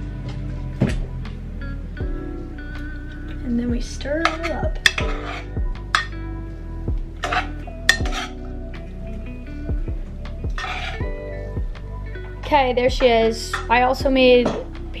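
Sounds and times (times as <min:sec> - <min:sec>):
background music with beat: 0:00.0 - 0:15.0
utensil scraping and clinking pot: 0:04.0 - 0:06.2, 0:07.2 - 0:08.4, 0:10.5 - 0:11.1, 0:13.3 - 0:13.8.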